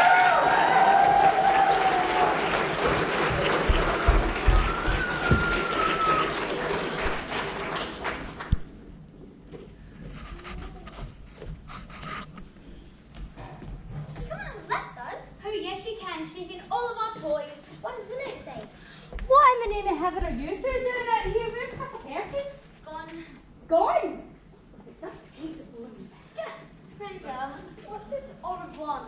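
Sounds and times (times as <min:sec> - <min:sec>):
person cheering: 0:00.0 - 0:02.4, 0:04.4 - 0:06.6
audience applauding: 0:00.0 - 0:08.9.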